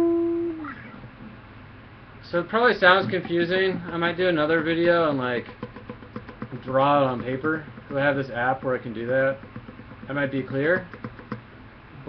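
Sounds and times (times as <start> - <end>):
acoustic guitar plucked note: 3.0 - 11.4.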